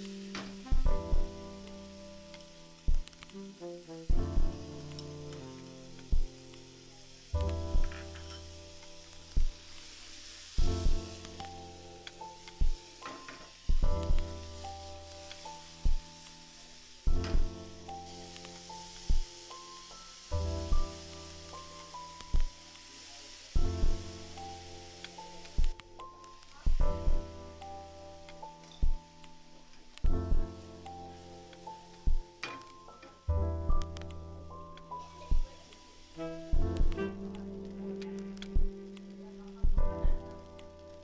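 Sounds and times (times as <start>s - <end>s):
background music of held chords: 0.0s - 41.0s
vegetables sizzling in oil: 0.0s - 41.0s
deep drum thumps: 0.7s - 1.3s, 4.1s - 4.7s, 10.6s - 11.1s, 12.6s - 12.8s, 13.7s - 14.3s, 17.1s - 17.6s, 23.6s - 24.0s, 26.7s - 27.3s, 36.5s - 37.0s, 39.6s - 40.2s.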